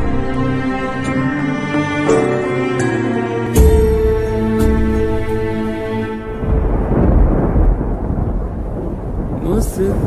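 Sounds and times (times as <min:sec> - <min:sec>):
rain: 0:03.5 - 0:10.0
thunder rumbling: 0:03.6 - 0:10.0.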